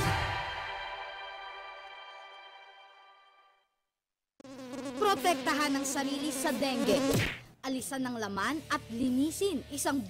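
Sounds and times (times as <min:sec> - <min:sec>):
mosquito buzzing: 0:04.4 - 0:07.4.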